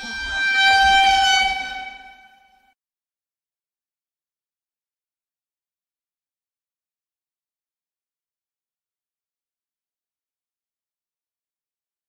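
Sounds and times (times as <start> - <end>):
sustained horn-like tone: 0.0 - 2.7.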